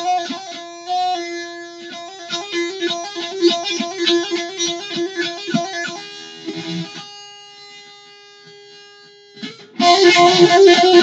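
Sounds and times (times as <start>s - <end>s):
electric guitar note ringing: 9.4s - 11.0s.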